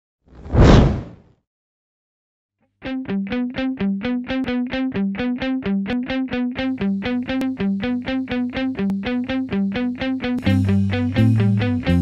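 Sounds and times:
whoosh sound effect: 0.4s - 1.2s.

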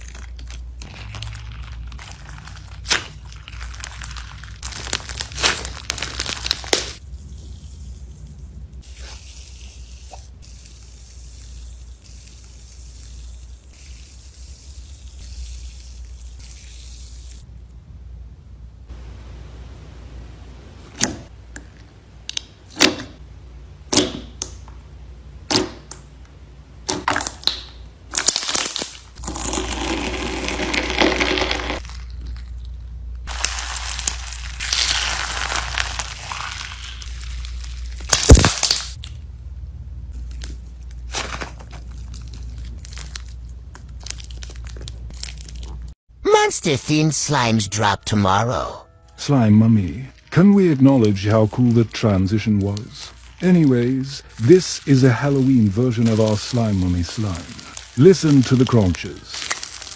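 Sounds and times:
slime squishing: 0.0s - 17.4s, 40.1s - 46.0s, 50.1s - 59.9s
wet crackling slime squelches: 0.0s - 17.5s, 26.8s - 46.0s, 49.9s - 59.9s.

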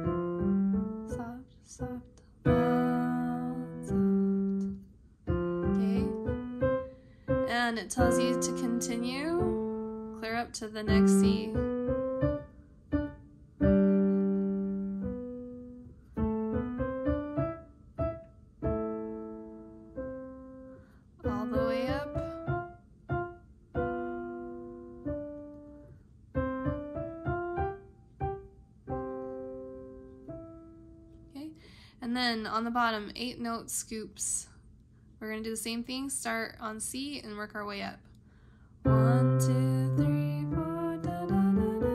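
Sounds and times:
piano notes and chords: 0.0s - 31.8s, 38.8s - 41.9s.

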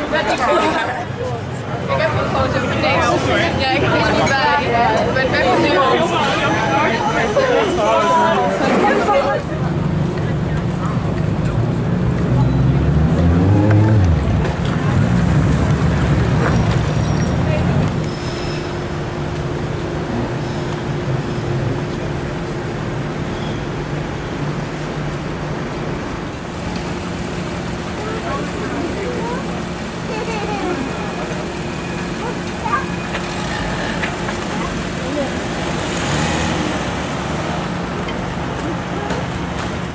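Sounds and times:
large engine rumbling: 0.0s - 39.9s
car moving off hiss: 33.1s - 38.4s.

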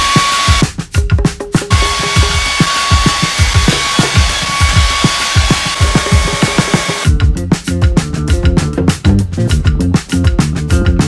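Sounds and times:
hair dryer blowing: 0.0s - 0.7s, 1.7s - 7.1s
music with thudding drum beat: 0.0s - 11.0s.

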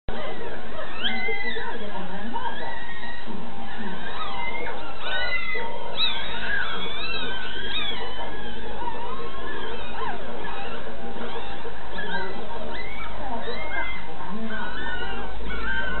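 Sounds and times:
puppies squeaking and whimpering: 0.1s - 16.0s.

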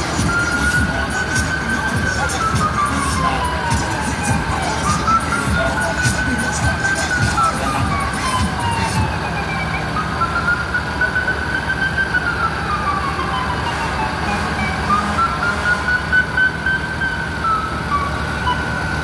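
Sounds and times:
steady high tone: 0.0s - 19.0s
street and engine noise: 0.0s - 19.0s
vehicle siren wailing: 0.0s - 19.0s.

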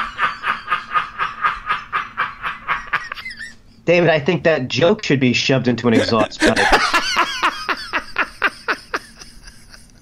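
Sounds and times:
man laughing: 0.0s - 3.6s, 5.9s - 10.0s.

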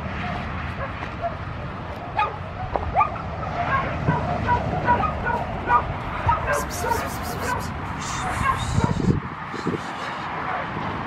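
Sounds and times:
dogs barking and yipping: 0.1s - 9.2s.

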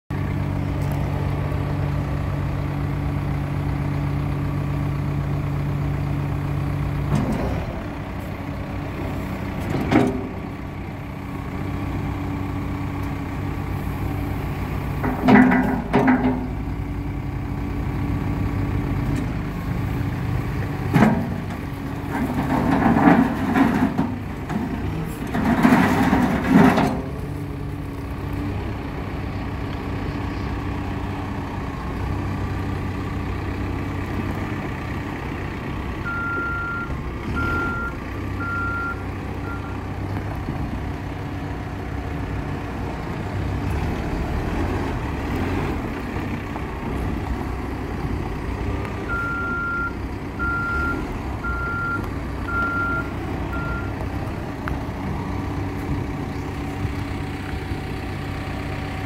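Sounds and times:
backhoe diesel engine running: 0.1s - 59.0s.

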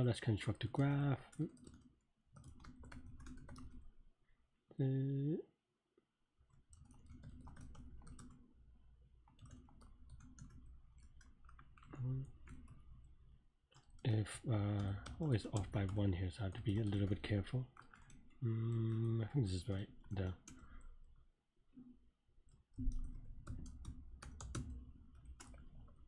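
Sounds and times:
typing on computer keyboard: 0.4s - 3.9s, 6.4s - 8.5s, 9.2s - 21.2s, 22.4s - 26.0s.

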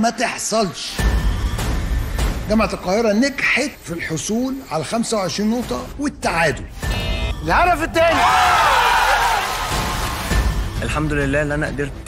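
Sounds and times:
audience applauding and cheering: 8.1s - 10.5s.

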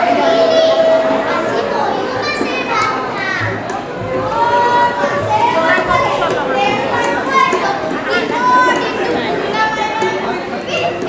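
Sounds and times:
children speaking and calling out: 0.0s - 11.0s.

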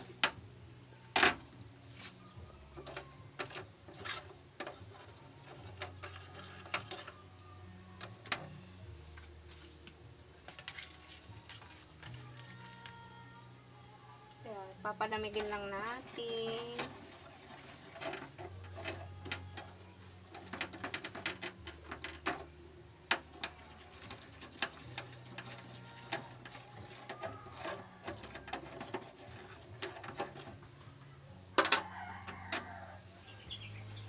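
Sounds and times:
metal clatter: 15.2s - 22.5s.

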